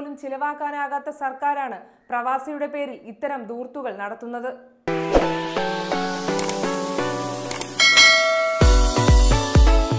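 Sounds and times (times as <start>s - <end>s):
outro music: 4.9s - 9.9s
mouse clicks: 6.4s - 6.6s, 7.5s - 7.8s
bright bell chime: 7.8s - 9.2s
heavy bass beat: 7.9s - 9.8s.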